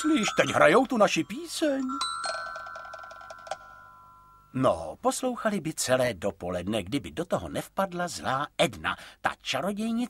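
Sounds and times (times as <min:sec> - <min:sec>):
chime-like ringing note: 0:00.0 - 0:04.6.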